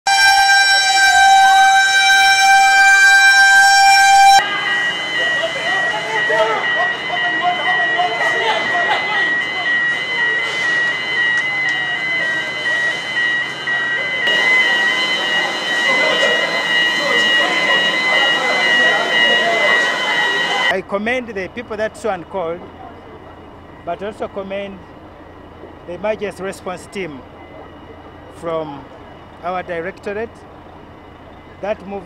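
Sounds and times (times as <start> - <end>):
fire engine horn: 0.1 - 13.6, 14.2 - 20.7
fire engine siren wailing: 0.1 - 32.0
high-pitched alarm beeping: 0.1 - 32.0
voices: 3.8 - 32.0.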